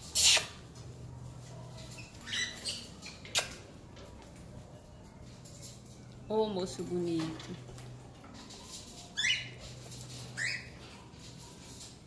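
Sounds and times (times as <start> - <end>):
parrot calling: 2.0 - 3.6.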